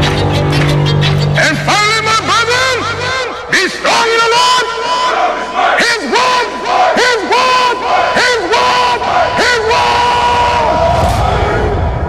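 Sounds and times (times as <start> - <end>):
group of voices chanting: 4.7 - 12.0.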